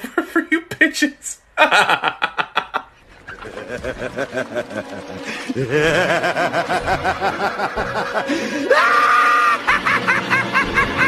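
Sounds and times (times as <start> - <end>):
high-pitched laughter: 1.6 - 11.0.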